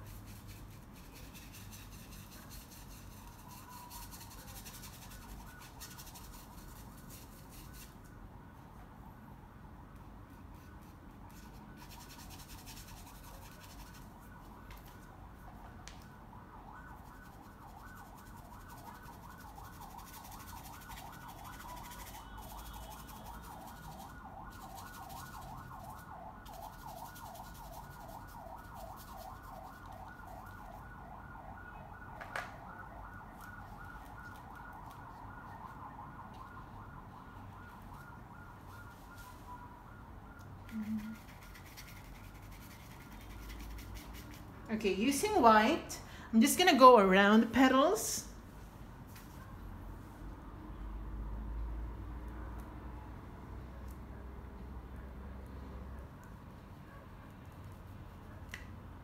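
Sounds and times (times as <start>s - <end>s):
paintbrush scratching on canvas: 0.0s - 8.1s, 10.6s - 15.0s, 16.9s - 30.7s, 41.0s - 45.5s.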